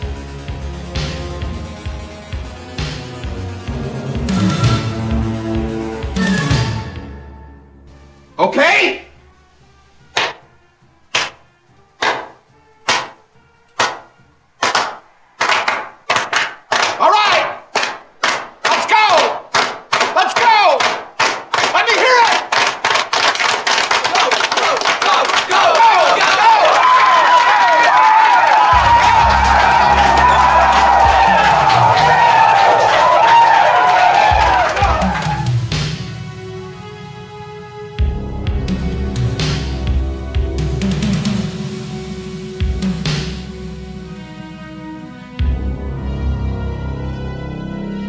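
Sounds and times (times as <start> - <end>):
low music: 0.0 - 15.8, 26.2 - 48.0
young men shouting a chant: 20.2 - 20.8, 24.7 - 27.8.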